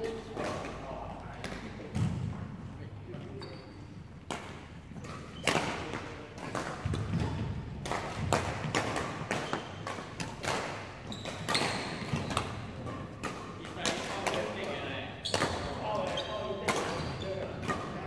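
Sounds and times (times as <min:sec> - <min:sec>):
rackets striking shuttlecocks: 0:04.2 - 0:18.0.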